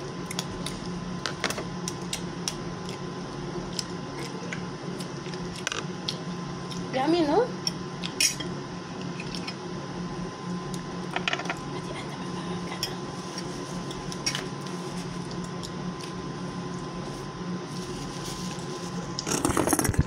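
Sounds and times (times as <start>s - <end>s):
low room hum: 0.0s - 20.0s.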